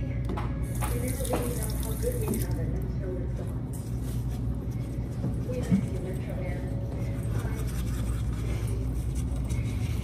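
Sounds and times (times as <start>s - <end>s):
faucet water splashing into sink: 0.7s - 2.6s.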